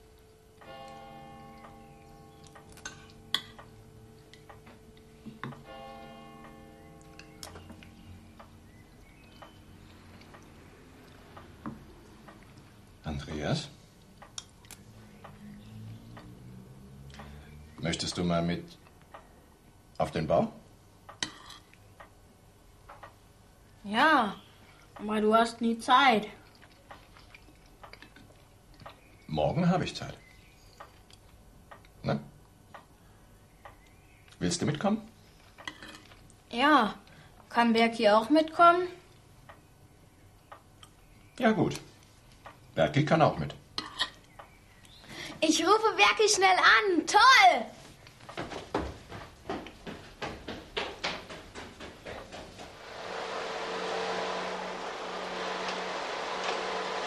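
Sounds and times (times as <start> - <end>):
faint steady hum: 0.0 - 57.0
cutlery clinking on bowls: 2.4 - 4.5, 21.2 - 21.8, 43.8 - 44.3.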